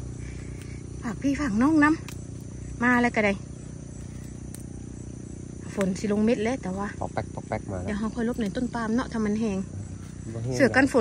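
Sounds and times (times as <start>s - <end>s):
high-pitched insect chirring: 0.0s - 11.0s
low background hum: 0.0s - 11.0s.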